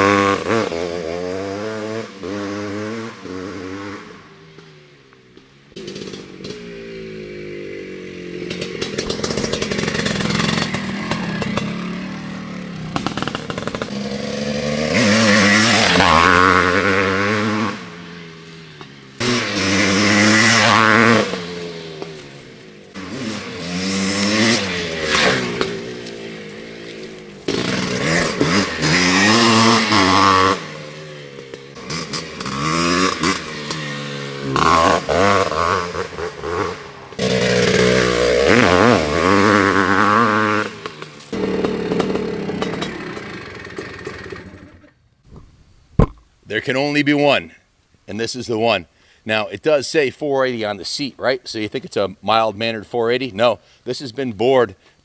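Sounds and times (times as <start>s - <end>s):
dirt bike engine revving: 0.0s - 45.0s.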